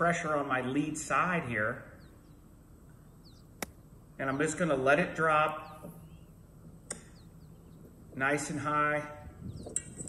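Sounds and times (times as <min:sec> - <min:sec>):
faint bird chirps: 0:01.6 - 0:04.5, 0:05.4 - 0:08.1, 0:09.1 - 0:10.0
golf club striking ball: 0:03.6 - 0:03.8.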